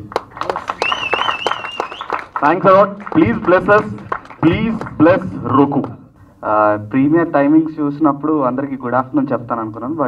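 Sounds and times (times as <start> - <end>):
crowd hand clapping: 0.0 - 6.0
wavering high whistle: 0.8 - 2.2.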